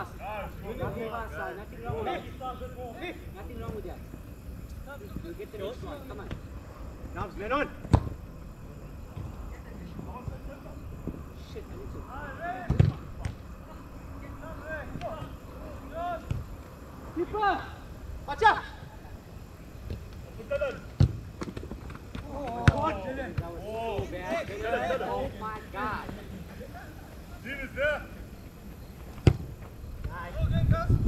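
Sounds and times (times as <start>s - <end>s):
football being kicked: 7.8s - 8.2s, 12.6s - 13.4s, 21.0s - 21.7s, 22.5s - 24.1s, 29.2s - 30.2s
players shouting: 9.3s - 21.0s, 22.1s - 28.5s.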